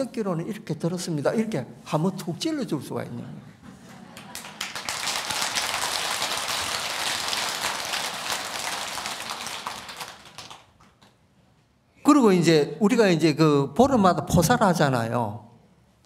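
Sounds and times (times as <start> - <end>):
audience applauding: 4.2 - 11.1.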